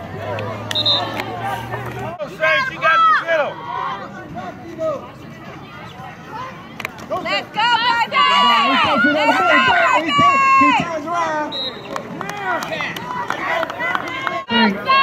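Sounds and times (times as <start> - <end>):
spectators shouting and cheering: 0.0 - 4.6, 5.2 - 15.0.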